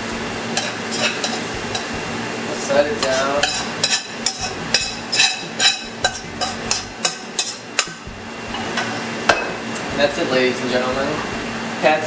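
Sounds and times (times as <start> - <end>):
spatula scraping frying pan: 0.5 - 2.0, 2.9 - 9.0.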